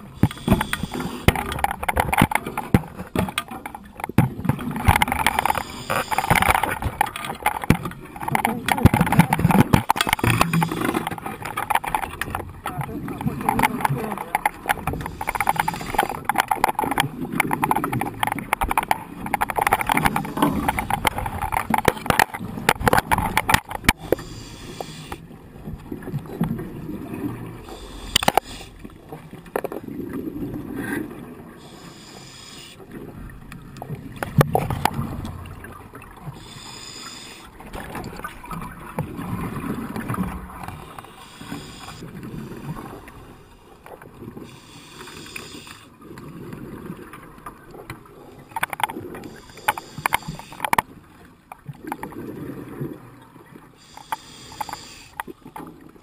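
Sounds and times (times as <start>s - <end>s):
diver breathing through regulator: 0.0s - 1.6s, 5.4s - 6.8s, 10.1s - 11.4s, 14.9s - 16.5s, 23.9s - 25.3s, 27.6s - 28.8s, 31.6s - 32.9s, 36.3s - 37.7s, 40.7s - 43.4s, 44.4s - 45.9s, 49.2s - 50.8s, 53.8s - 55.3s
exhaled bubbles gurgling: 0.0s - 50.4s
sharp clicks and knocks: 0.2s - 25.2s, 28.0s - 28.6s.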